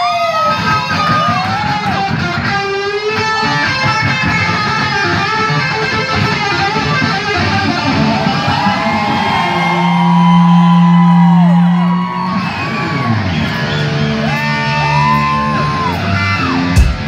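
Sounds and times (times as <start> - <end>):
electric guitar solo: 0.0 - 17.0
live rock band: 0.0 - 17.0.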